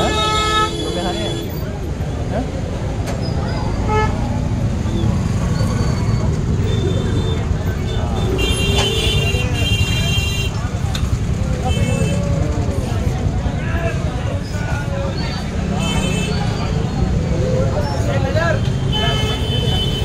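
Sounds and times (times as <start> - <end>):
vehicle horns honking: 0.0 - 1.6, 3.8 - 4.4, 6.6 - 10.6, 15.6 - 16.7, 18.6 - 20.0
crowd voices: 0.0 - 20.0
street traffic: 0.0 - 20.0.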